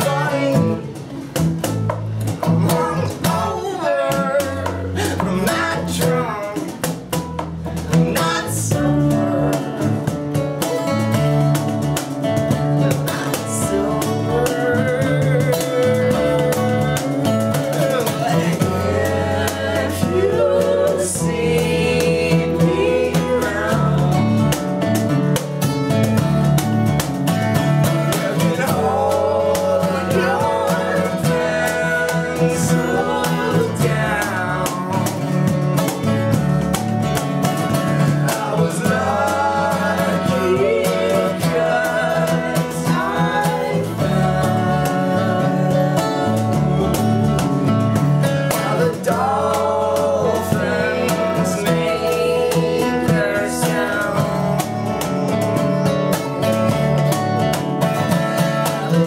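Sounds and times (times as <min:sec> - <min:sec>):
man singing: 0:00.0 - 0:01.1, 0:02.4 - 0:07.0, 0:07.8 - 0:11.6, 0:12.8 - 0:25.0, 0:27.6 - 0:36.3, 0:37.8 - 0:55.8, 0:58.2 - 0:59.0
bass guitar: 0:00.0 - 0:59.0
cajon: 0:00.0 - 0:59.0
strummed acoustic guitars: 0:00.0 - 0:59.0.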